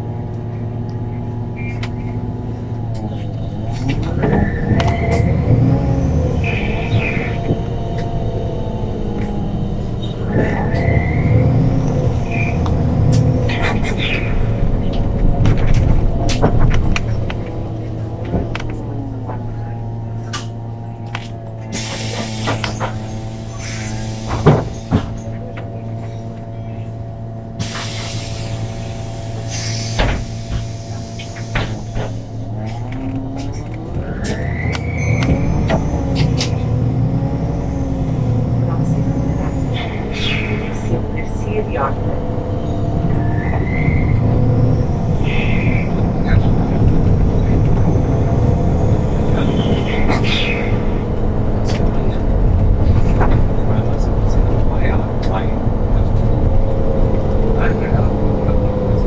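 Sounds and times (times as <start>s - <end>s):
bus engine whining: 0.0s - 59.0s
air hiss: 27.6s - 32.3s.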